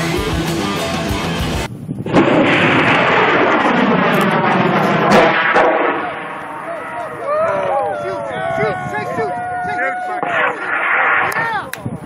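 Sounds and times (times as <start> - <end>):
rock music with electric guitar: 0.0 - 1.7.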